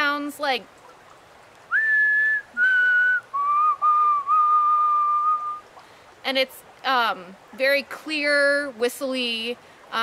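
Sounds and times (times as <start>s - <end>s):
person whistling bird song: 1.7s - 5.6s.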